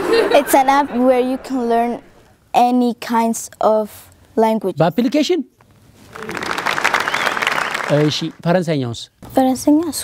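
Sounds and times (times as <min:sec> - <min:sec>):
audience applause: 0:06.1 - 0:08.4.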